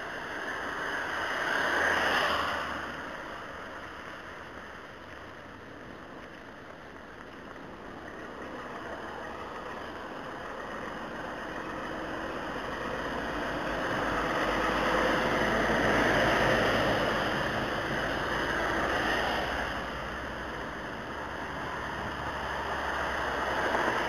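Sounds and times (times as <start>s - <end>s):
tyres hissing on wet asphalt: 0.0s - 24.0s.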